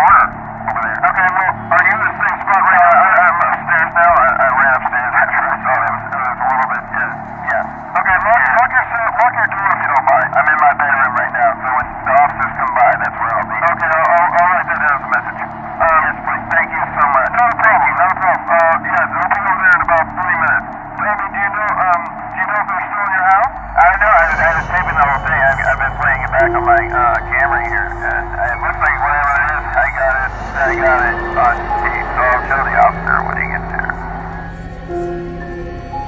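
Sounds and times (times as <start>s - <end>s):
speech over telephone line: 0.0s - 35.2s
faint background music: 0.0s - 36.0s.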